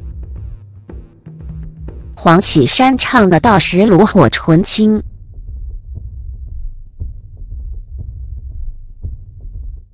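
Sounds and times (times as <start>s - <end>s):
thumping bass music: 0.0s - 2.2s, 5.0s - 9.9s.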